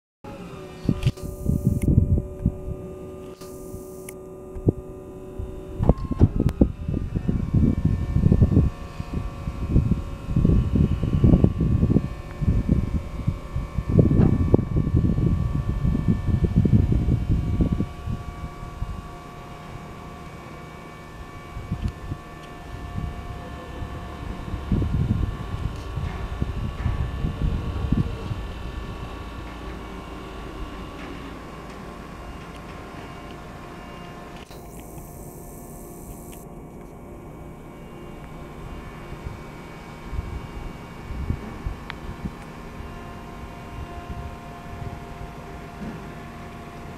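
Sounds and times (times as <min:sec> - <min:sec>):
hydraulic pump motor whine: 0:00.3 - 0:46.9
wind buffeting microphone: 0:00.8 - 0:02.8, 0:04.6 - 0:19.2, 0:21.0 - 0:31.6, 0:38.6 - 0:46.1.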